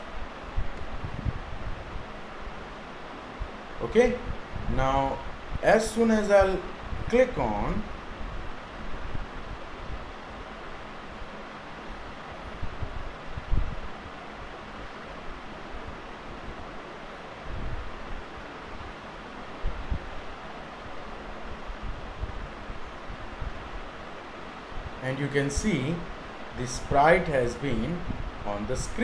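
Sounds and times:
microphone hiss: 0.0s - 29.0s.

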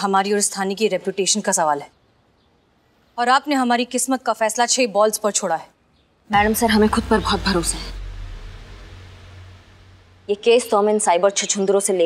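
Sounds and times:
low steady hum: 6.3s - 10.8s
faint hiss: 6.3s - 11.5s.

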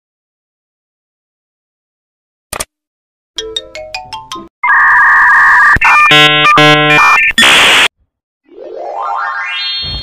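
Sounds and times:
electronic ringing: 4.6s - 7.9s
rising electronic chime notes: 8.5s - 10.0s.

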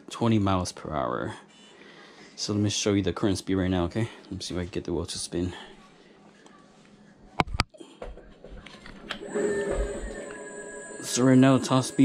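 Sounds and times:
electric scooter motor whine: 9.2s - 12.0s
thin high-pitched tone: 9.4s - 12.0s.

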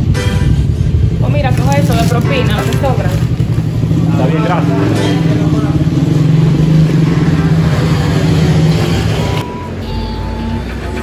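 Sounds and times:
vehicle engine idling: 0.0s - 11.0s
brief high tone: 8.9s - 11.0s.

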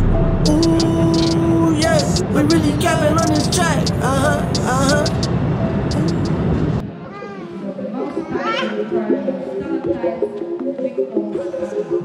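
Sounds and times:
train running on track: 0.0s - 6.8s
voices: 0.5s - 5.3s, 5.9s - 6.4s.

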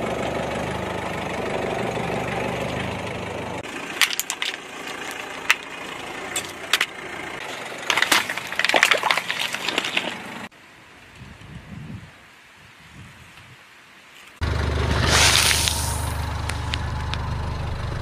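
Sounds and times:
car engine running: 0.0s - 8.7s, 14.4s - 18.0s.

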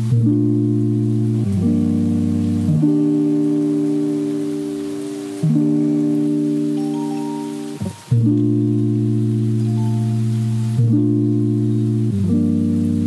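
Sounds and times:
background music of held chords: 0.0s - 13.0s.

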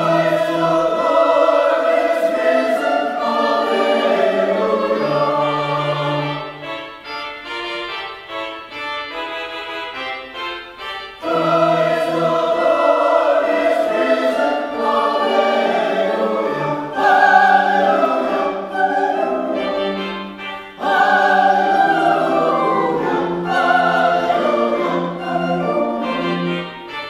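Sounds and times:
church choir singing: 0.0s - 9.3s, 10.3s - 27.0s.

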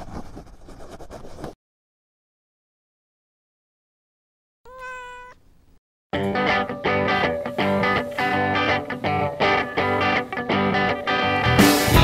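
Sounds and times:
short meow-like call: 4.7s - 5.4s.

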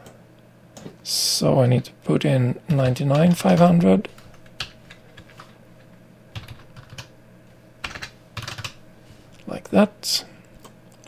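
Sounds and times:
computer keyboard keystrokes: 6.4s - 7.1s, 7.8s - 8.8s.

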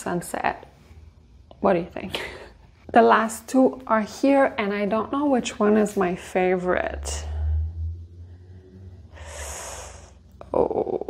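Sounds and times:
woman breathing in: 7.3s - 10.4s.

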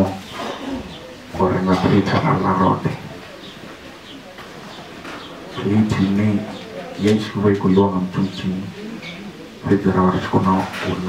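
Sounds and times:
man speaking through a loudspeaker: 0.0s - 0.3s, 1.3s - 3.3s, 5.5s - 11.0s.

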